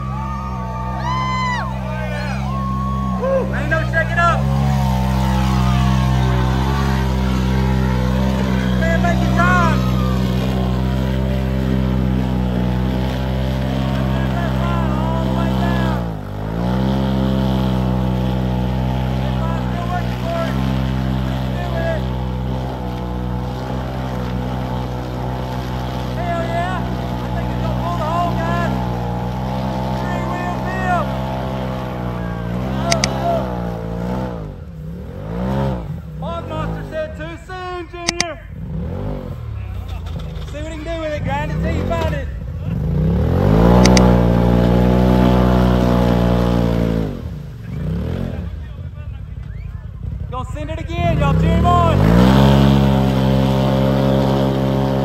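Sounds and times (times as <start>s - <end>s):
engine revving in mud: 0.0s - 37.3s, 38.0s - 55.0s
tires churning through mud: 0.0s - 55.0s.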